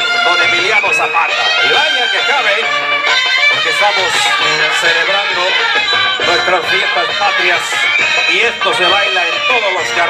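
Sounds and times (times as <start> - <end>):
wind band playing: 0.0 - 10.0.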